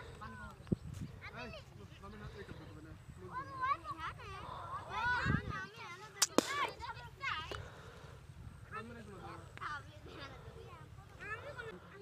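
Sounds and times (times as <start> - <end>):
children calling and shouting: 0.0 - 12.0
sharp cracks: 6.2 - 6.9.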